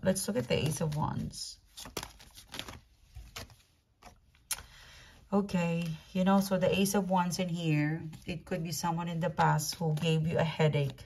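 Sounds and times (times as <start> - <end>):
cards sliding: 1.7 - 4.7.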